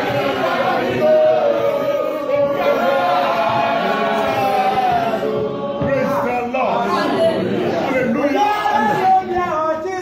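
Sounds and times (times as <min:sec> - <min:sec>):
congregation singing: 0:00.0 - 0:09.4
man leading singing: 0:00.0 - 0:10.0.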